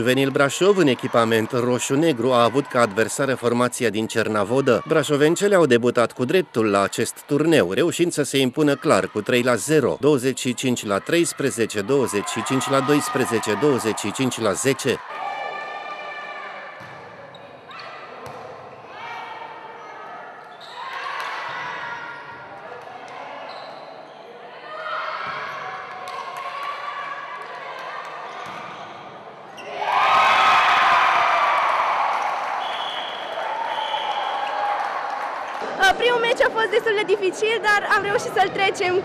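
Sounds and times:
crowd shouting and cheering: 0.0s - 39.0s
volleyball struck and bouncing: 16.8s - 17.1s.

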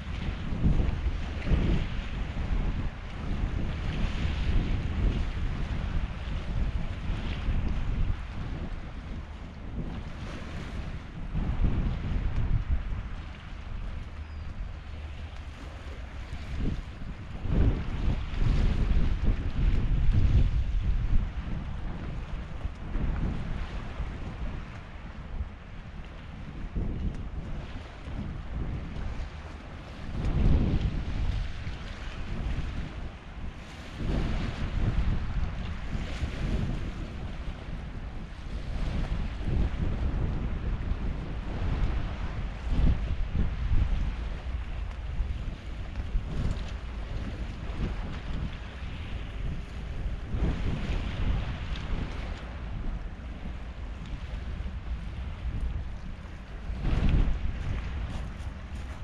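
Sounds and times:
small waves on stony shore: 0.0s - 59.0s
wind buffeting microphone: 0.0s - 59.0s.

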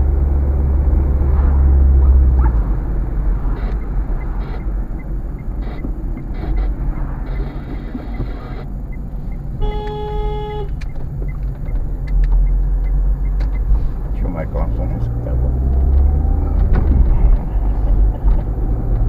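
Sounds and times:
car engine and tyre rumble: 0.0s - 19.0s
car horn blast: 9.6s - 10.8s.

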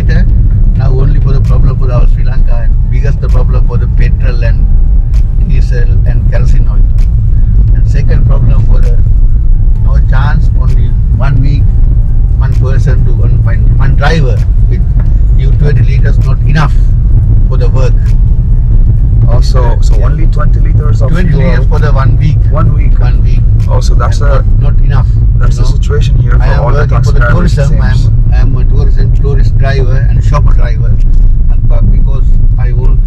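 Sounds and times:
man talking: 0.0s - 7.0s, 7.7s - 9.1s, 9.8s - 18.2s, 19.2s - 33.0s
car engine rumble and road noise: 0.0s - 33.0s.

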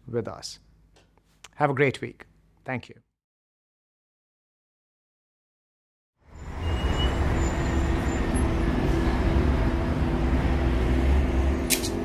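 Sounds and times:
deep rumbling drone: 7.6s - 11.7s.

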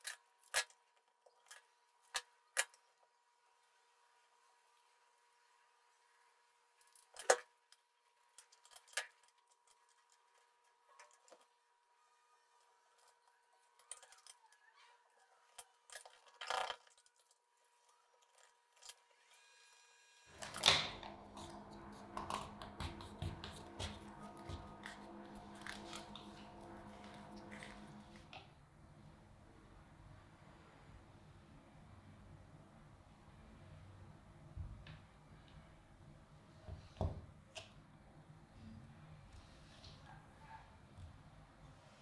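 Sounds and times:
small clicks and scrapes: 0.0s - 3.1s, 6.8s - 11.6s, 12.6s - 19.8s
low hum with held tones: 1.1s - 42.0s.

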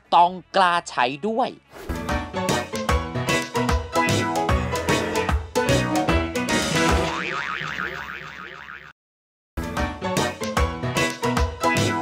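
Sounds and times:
cartoon boing sound effect: 7.0s - 8.9s.

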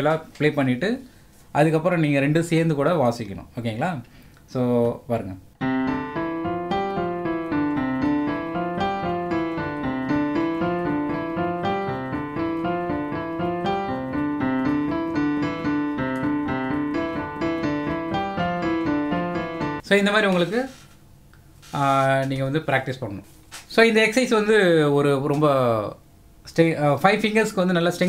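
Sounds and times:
fast piano playing: 5.6s - 19.8s.

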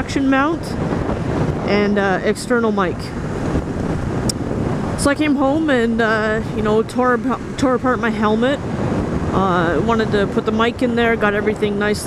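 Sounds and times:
wind and road noise on motorcycle: 0.0s - 12.0s.

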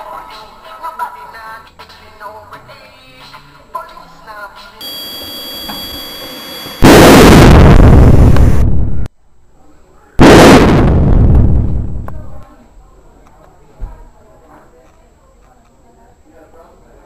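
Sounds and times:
jet high whine: 4.8s - 9.1s
loud explosion blasts: 6.8s - 9.1s, 10.2s - 12.4s.

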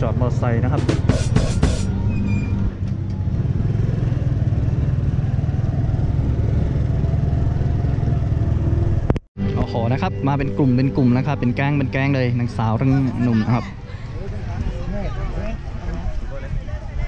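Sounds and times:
motorcycle engine rumble: 0.0s - 9.2s.

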